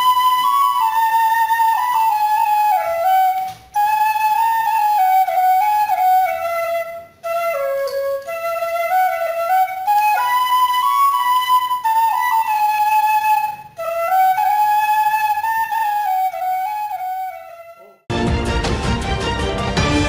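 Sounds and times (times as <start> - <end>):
slow solo flute melody: 0.0 - 18.1.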